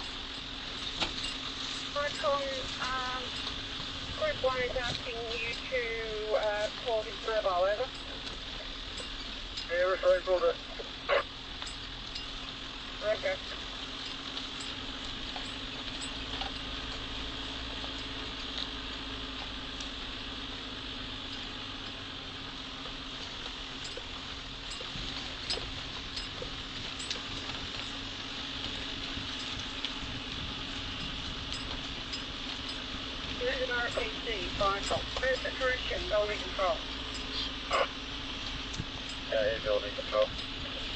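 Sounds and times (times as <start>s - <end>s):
light clicks and rattles: 0.0s - 37.6s
vehicle engine drone: 0.0s - 40.9s.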